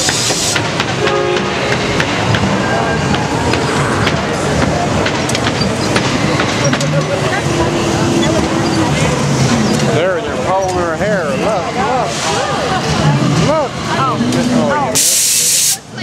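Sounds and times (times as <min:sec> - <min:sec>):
voices: 0:00.0 - 0:16.0
burst of hiss: 0:15.0 - 0:15.8.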